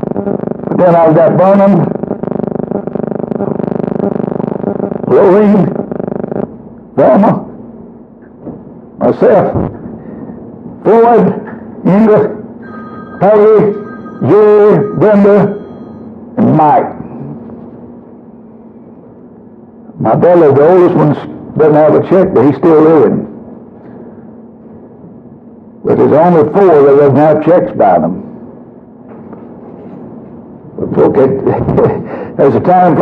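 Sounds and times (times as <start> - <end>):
faint low hum: 0.0 - 33.0
sustained keyboard chord: 12.6 - 16.1.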